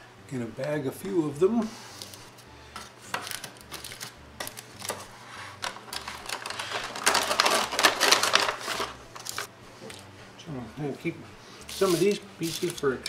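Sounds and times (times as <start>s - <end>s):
plastic bag crinkling: 5.9s - 9.5s.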